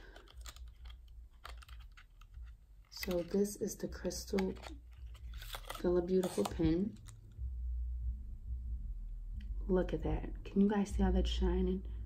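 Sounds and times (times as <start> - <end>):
pen in plastic sleeve clicking: 0.0 - 7.4.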